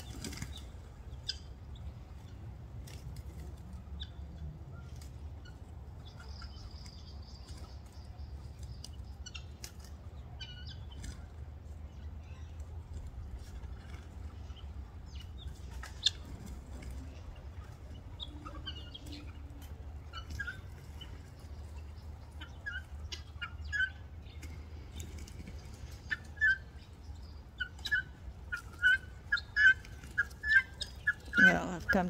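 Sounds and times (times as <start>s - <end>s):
bird calls: 0.0s - 32.0s.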